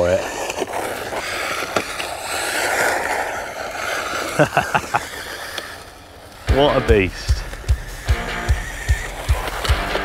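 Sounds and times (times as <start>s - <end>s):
rc car motor whine: 0.0s - 10.0s
tyres hissing on gravel: 0.0s - 10.0s.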